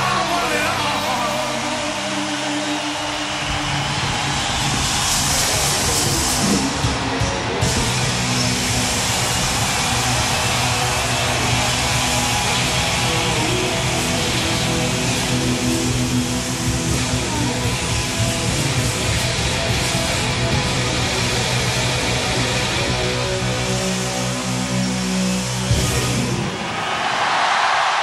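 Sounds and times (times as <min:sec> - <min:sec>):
hard rock band playing: 0:00.0 - 0:26.7.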